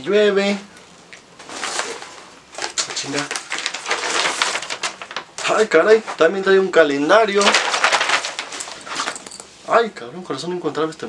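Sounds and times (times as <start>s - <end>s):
rustling of paper and fabric: 1.1s - 9.8s.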